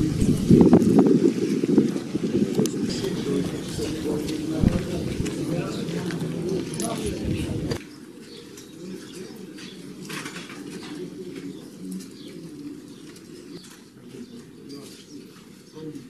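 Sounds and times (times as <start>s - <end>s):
birds calling: 0.0s - 16.0s
distant voices murmuring: 0.0s - 16.0s.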